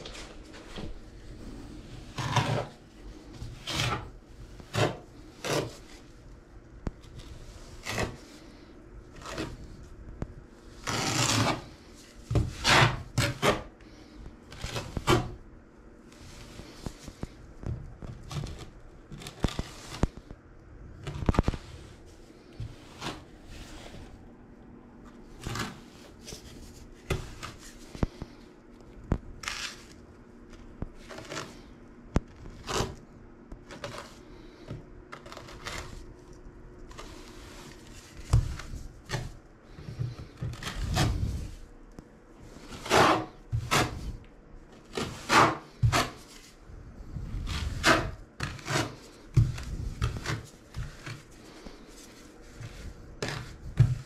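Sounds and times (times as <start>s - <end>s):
trowel scraping mortar on wall: 2.0s - 2.8s, 3.5s - 5.8s, 10.7s - 13.7s, 42.5s - 44.2s, 44.9s - 46.4s, 47.4s - 51.2s.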